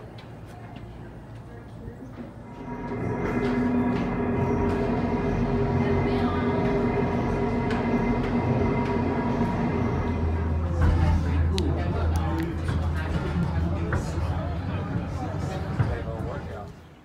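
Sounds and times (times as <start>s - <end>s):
deep machinery rumble: 0.0s - 17.0s
cable hoist machinery humming: 2.2s - 16.9s.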